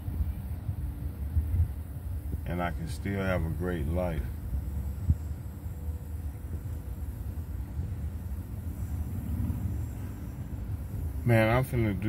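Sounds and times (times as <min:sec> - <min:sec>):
low rumble in vehicle cabin: 0:00.0 - 0:12.0.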